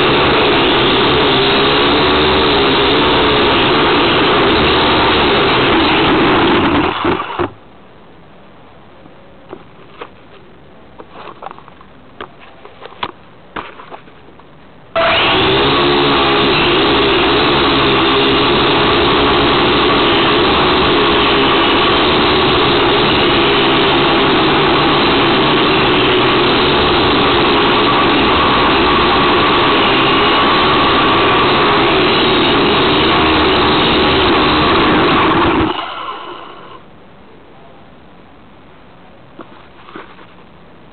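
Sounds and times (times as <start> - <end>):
quadcopter motors whining: 0.0 - 7.5, 15.0 - 36.8.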